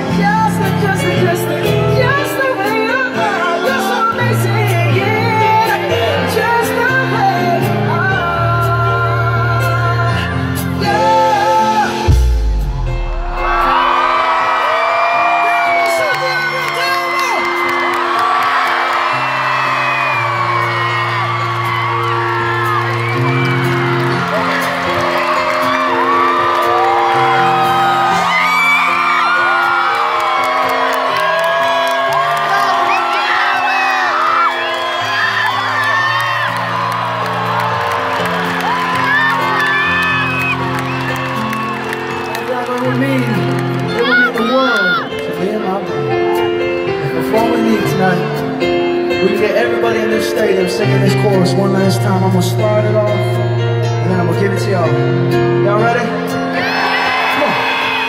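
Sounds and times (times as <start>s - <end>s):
live band sustained chords: 0.0s - 57.7s
crowd cheering and singing along: 0.0s - 58.0s.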